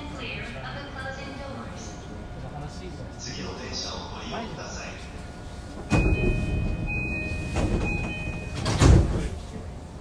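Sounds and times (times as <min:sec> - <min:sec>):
train rumbling: 0:00.0 - 0:10.0.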